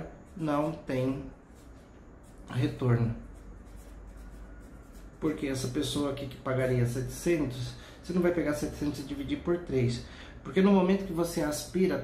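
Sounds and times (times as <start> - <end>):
felt-tip pen scratching paper: 0.3 - 5.9.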